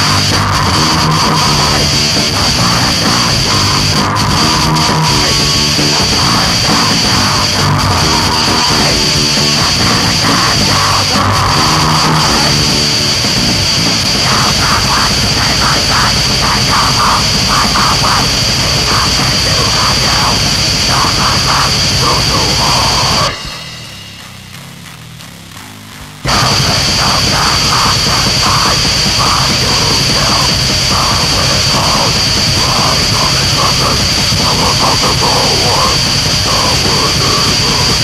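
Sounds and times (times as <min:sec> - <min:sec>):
heavy metal music: 0:00.0 - 0:38.0.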